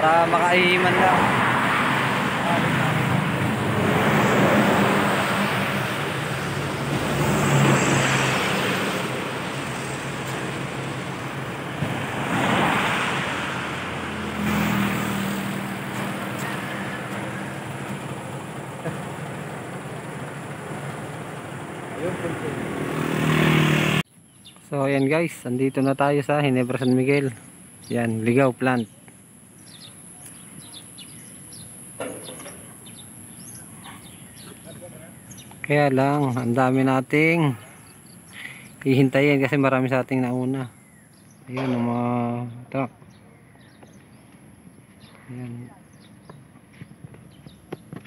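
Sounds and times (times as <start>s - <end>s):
motorcycle passing: 0.0s - 24.1s
vehicles passing on highway: 0.0s - 24.7s, 25.5s - 48.0s.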